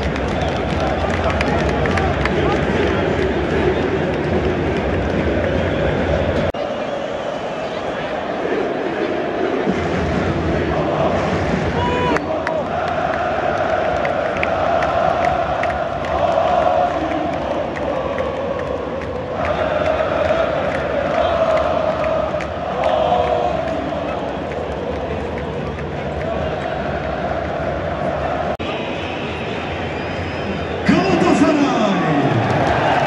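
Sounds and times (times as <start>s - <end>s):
stadium crowd chanting: 0.0s - 33.0s.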